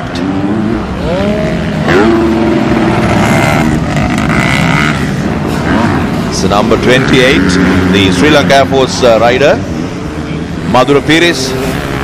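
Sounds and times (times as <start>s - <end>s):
racing motorcycle engines revving: 0.0s - 12.0s.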